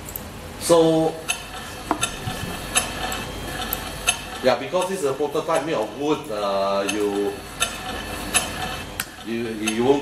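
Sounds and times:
motor humming: 0:01.4 - 0:09.8.

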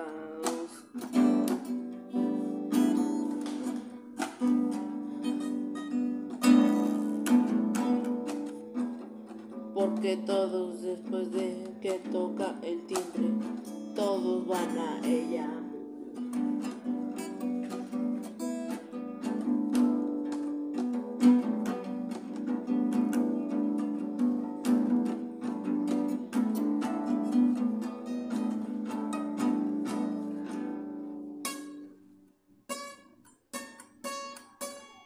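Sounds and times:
plucked guitar music: 0:00.0 - 0:35.0.

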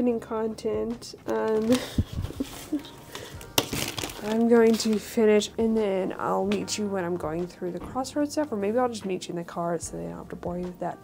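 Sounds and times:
items moved on worktable: 0:01.3 - 0:05.2.

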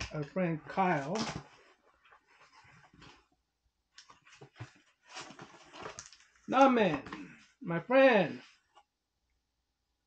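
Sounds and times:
cardboard scraping and rustling: 0:04.1 - 0:06.3.

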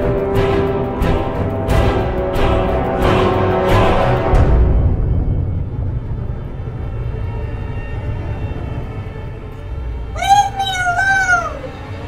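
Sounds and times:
high wavering meow-like cry: 0:10.2 - 0:11.8.

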